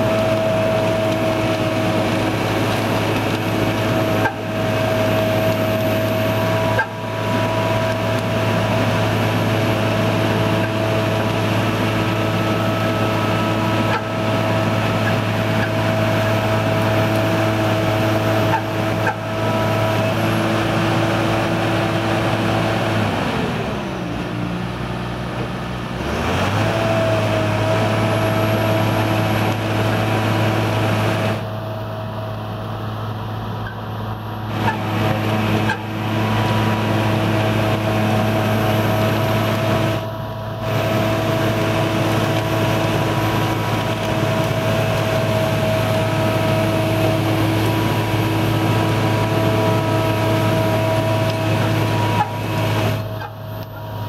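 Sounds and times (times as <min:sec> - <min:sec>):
tracklayer engine running: 0:00.0 - 0:54.0.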